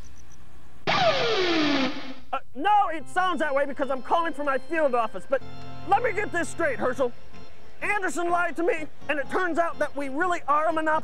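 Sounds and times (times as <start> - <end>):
descending swoop effect: 0.9 - 2.3.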